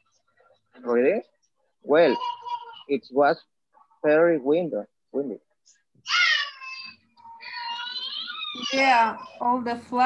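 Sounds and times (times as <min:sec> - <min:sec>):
high-pitched drawn-out cries: 0:06.1 - 0:09.3.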